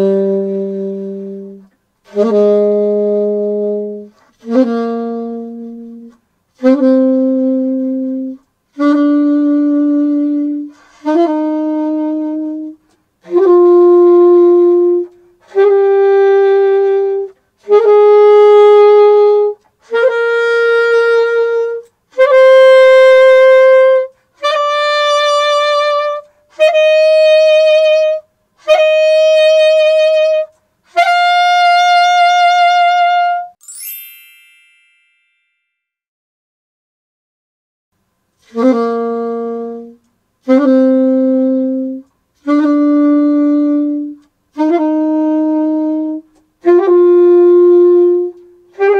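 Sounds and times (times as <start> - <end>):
saxophone playing held notes: 0.0 - 35.1, 38.4 - 48.9.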